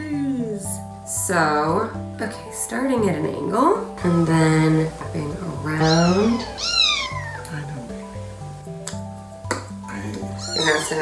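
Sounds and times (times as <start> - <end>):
soft background music: 0.0 - 11.0
kitten meowing: 5.8 - 7.6, 10.3 - 11.0.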